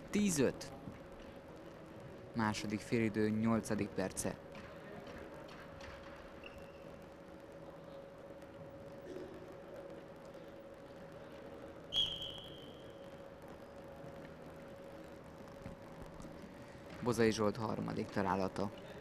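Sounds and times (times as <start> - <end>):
faint steady hum: 0.0 - 19.0
sports hall room noise: 0.0 - 19.0
referee's whistle blast: 11.9 - 12.9.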